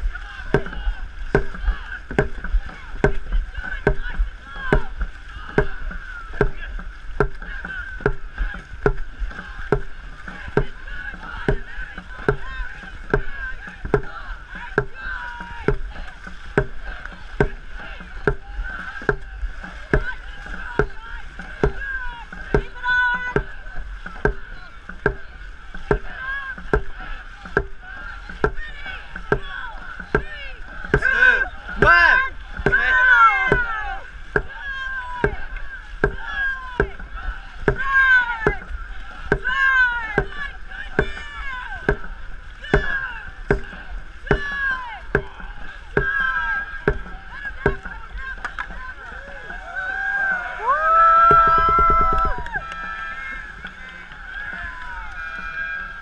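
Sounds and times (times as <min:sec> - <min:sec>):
drum beaten in steady rhythm: 0:00.0 - 0:56.0
paddles splashing water: 0:00.0 - 0:56.0
people shouting calls: 0:00.0 - 0:56.0.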